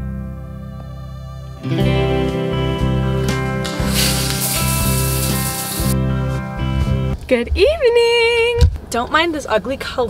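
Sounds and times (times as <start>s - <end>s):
guitar music: 0.0s - 7.2s
shower water spraying: 3.3s - 6.0s.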